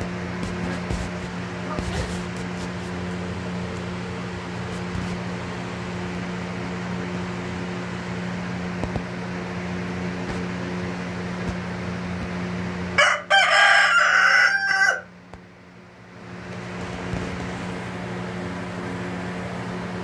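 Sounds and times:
steady low hum: 0:00.0 - 0:13.0, 0:15.0 - 0:20.0
rooster crowing: 0:13.0 - 0:15.2.

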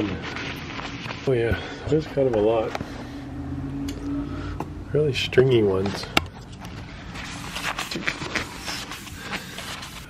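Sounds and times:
paper napkin rubbing: 0:00.0 - 0:01.5, 0:06.9 - 0:10.0.

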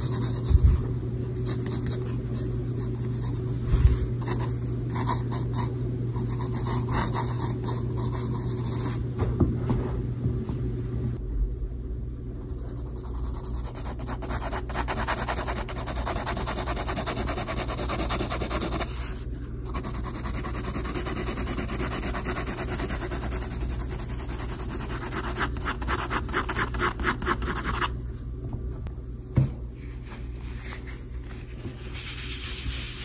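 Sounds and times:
pencil scratching on paper: 0:00.0 - 0:00.6, 0:04.2 - 0:09.0, 0:12.4 - 0:27.9.

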